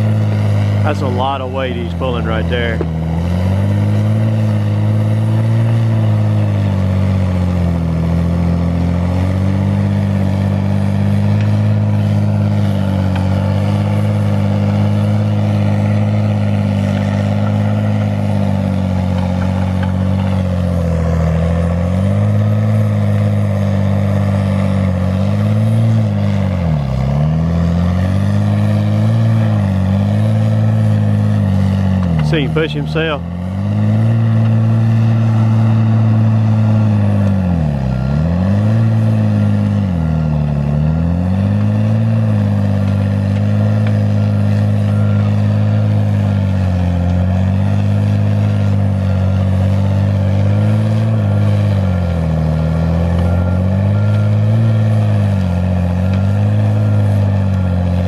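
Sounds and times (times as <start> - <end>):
diesel engine lugging under load: 0.0 - 58.0.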